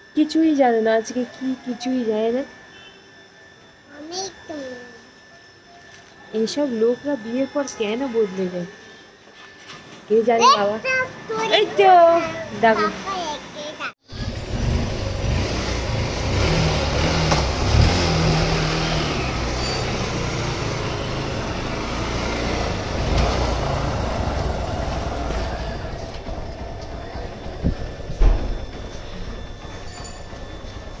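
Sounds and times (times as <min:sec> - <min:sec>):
woman and child talking: 0:10.1 - 0:14.0
motorcycle engine rumbling: 0:14.1 - 0:31.0.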